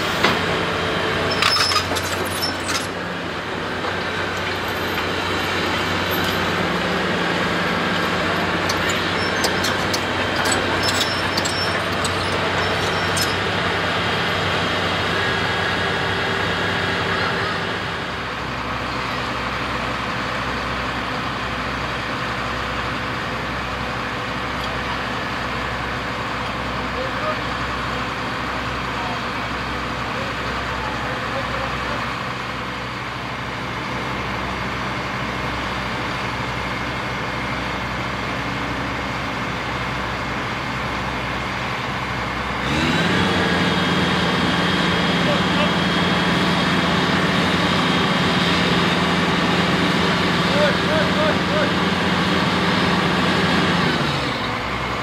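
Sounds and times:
heavy diesel engine running: 0:00.0 - 0:55.0.

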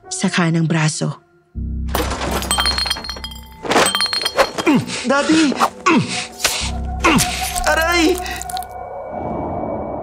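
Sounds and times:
glass shattering: 0:01.9 - 0:04.9.

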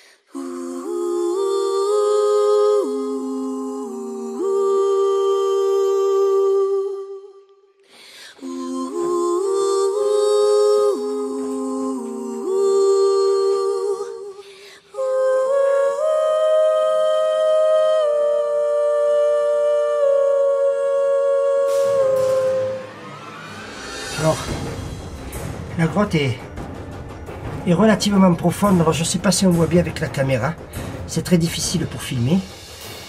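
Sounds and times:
wordless voice-like melody: 0:00.3 - 0:07.7, 0:08.4 - 0:33.0.

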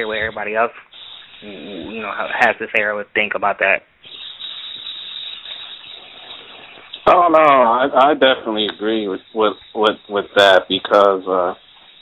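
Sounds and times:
telephone line hiss: 0:04.0 - 0:12.0.

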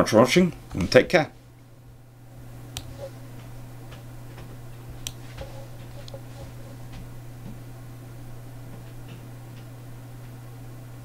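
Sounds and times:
steady low hum: 0:00.0 - 0:11.0
light clicks: 0:05.0 - 0:06.9.

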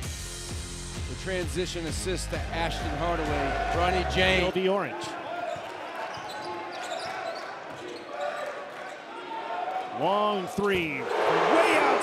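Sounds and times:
crowd and player voices: 0:01.7 - 0:12.0.

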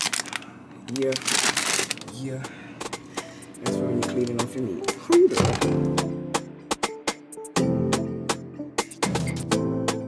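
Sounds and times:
plastic bags crinkling: 0:00.0 - 0:02.5.

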